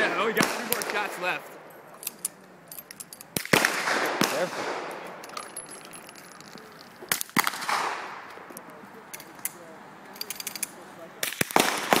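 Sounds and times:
gunshots with echo: 3.4 - 5.1, 11.2 - 12.0.

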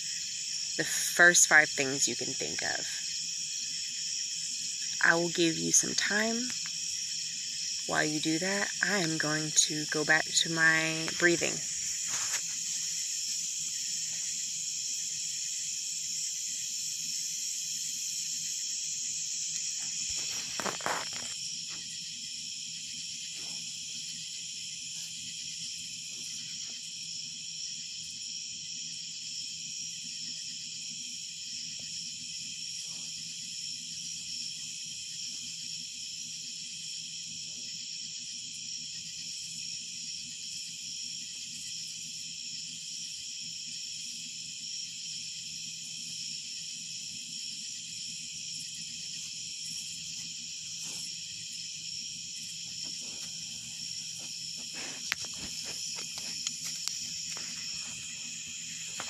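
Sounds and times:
crickets and night insects trilling: 0.0 - 59.0.

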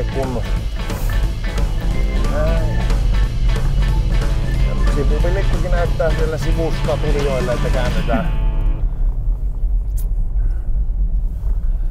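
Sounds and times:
car engine and road noise: 0.0 - 11.9.

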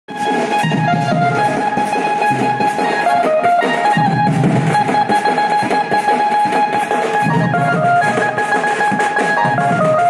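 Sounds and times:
busy drum beat: 0.1 - 10.0
wavering melody line: 0.1 - 10.0.

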